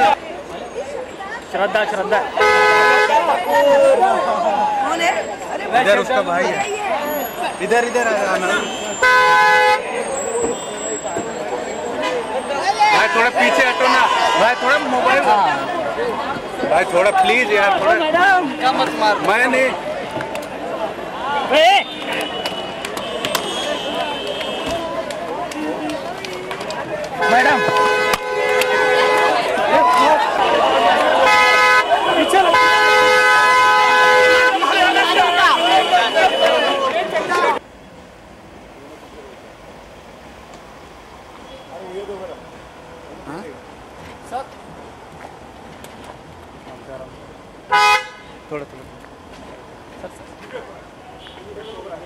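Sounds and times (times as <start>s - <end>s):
people talking and calling out: 0.0s - 39.8s
crowd shouting: 0.8s - 37.6s
car horn honking: 2.3s - 3.4s, 8.1s - 15.7s, 21.4s - 24.9s, 27.2s - 29.6s, 30.4s - 37.5s, 47.7s - 48.5s
car horn blast: 2.4s - 3.3s, 8.6s - 9.8s, 27.2s - 29.4s, 30.7s - 36.8s, 47.7s - 48.4s.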